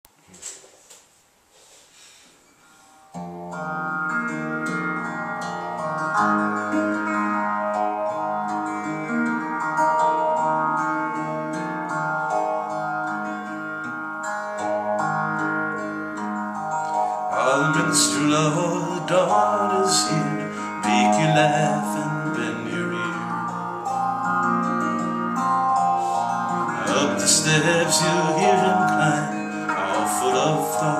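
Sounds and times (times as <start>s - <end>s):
clean electric guitar picking: 2.8s - 30.9s
man singing: 17.3s - 23.6s, 26.5s - 30.9s.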